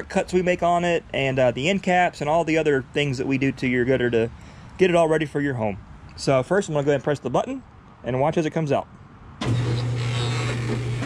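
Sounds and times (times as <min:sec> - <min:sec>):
gutter machine humming: 0:09.4 - 0:11.0.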